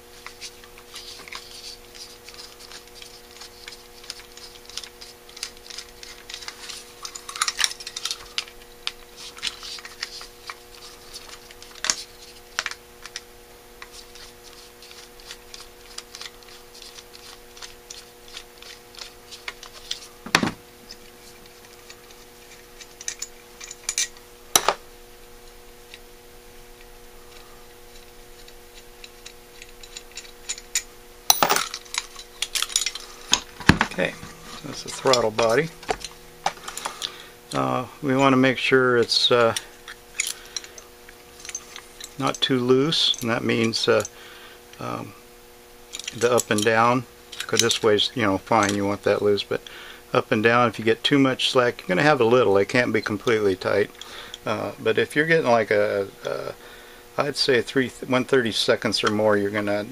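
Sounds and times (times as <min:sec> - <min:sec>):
metal clicks and scrapes: 0:00.2 - 0:13.2, 0:27.3 - 0:37.2
metal parts clinking: 0:00.9 - 0:12.0, 0:20.9 - 0:24.7, 0:29.0 - 0:38.7, 0:39.3 - 0:40.8, 0:41.4 - 0:44.1, 0:45.9 - 0:46.7.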